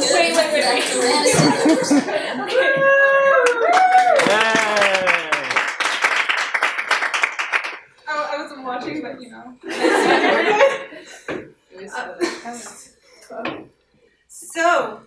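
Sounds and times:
indistinct voices: 0:00.0 - 0:03.6
laughter: 0:01.3 - 0:02.8, 0:09.6 - 0:11.2, 0:12.2 - 0:12.7
audience clapping: 0:03.3 - 0:08.0.

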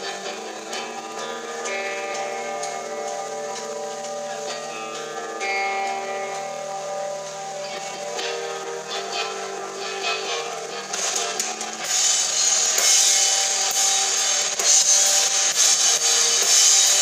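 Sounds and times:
electric guitar ringing chords: 0:00.0 - 0:17.0.

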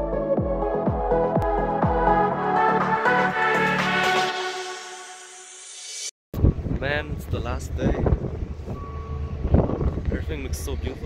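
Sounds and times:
wind rumbling on microphone: 0:06.4 - 0:11.0.

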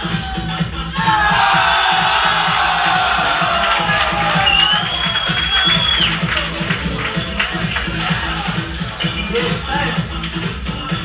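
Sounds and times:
crowd cheering and whooping: 0:00.0 - 0:06.6
dance music with steady beat: 0:00.0 - 0:11.0
person whistling high note: 0:04.4 - 0:06.2.

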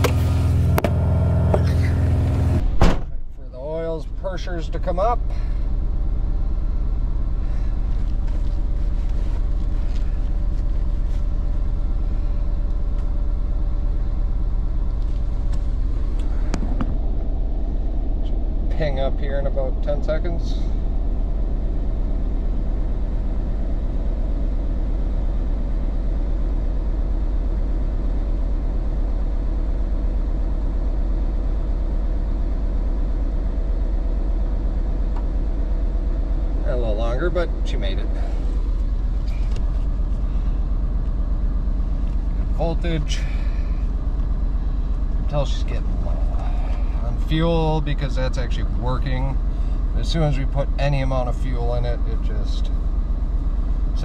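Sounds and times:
truck engine idling: 0:00.0 - 0:54.0.

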